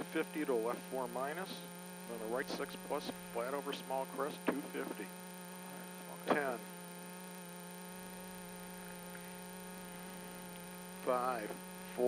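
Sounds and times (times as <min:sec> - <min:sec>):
faint high whine: 0:00.0 - 0:12.0
steady electrical hum: 0:00.0 - 0:12.0.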